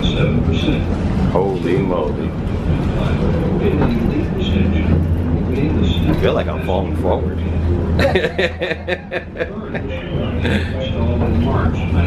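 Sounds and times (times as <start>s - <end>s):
funicular car rumbling on track: 0.0s - 12.0s.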